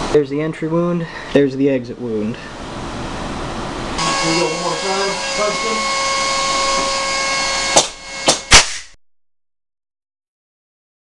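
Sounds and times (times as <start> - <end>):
railgun firing sharp cracks: 7.8 - 8.9.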